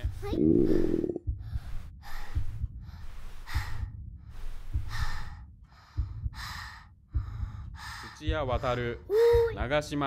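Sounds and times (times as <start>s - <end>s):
deep low thuds: 0.0s - 9.9s
girl breathing heavily: 0.2s - 9.6s.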